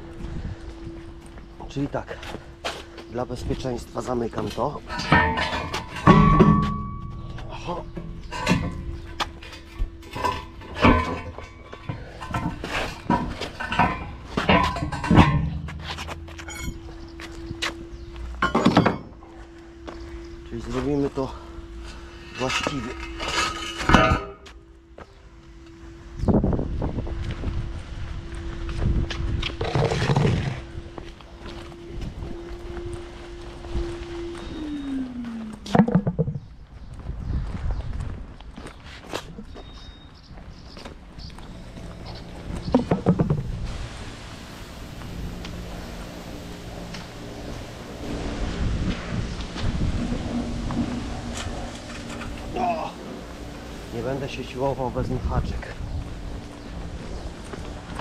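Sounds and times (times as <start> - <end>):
steady machine hum: 0.0 - 36.7, 40.9 - 58.0
manhole cover clanking: 2.6 - 19.3, 20.8 - 24.6, 29.4 - 30.8, 35.2 - 36.5, 41.3 - 46.0, 46.6 - 56.8.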